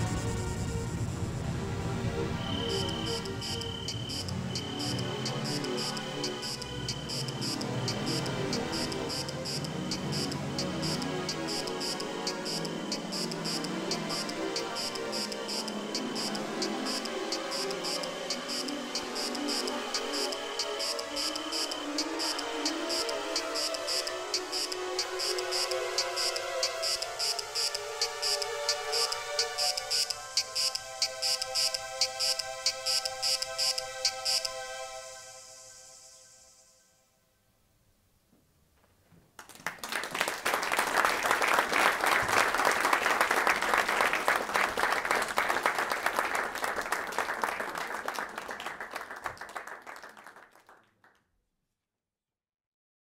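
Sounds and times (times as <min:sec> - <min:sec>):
low pulsing electronic texture: 0:00.0 - 0:27.7
held chord of steady tones: 0:00.0 - 0:37.3
high repeating electronic chirps: 0:02.5 - 0:34.5.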